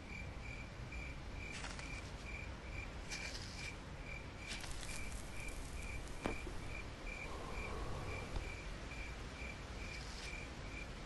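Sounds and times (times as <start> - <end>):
cricket chirping: 0.0 - 11.0
faint low hum: 0.0 - 11.0.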